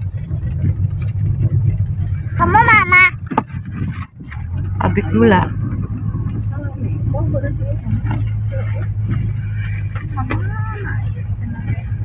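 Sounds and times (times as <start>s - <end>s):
car engine droning: 0.0s - 12.0s
quiet talking: 6.2s - 12.0s.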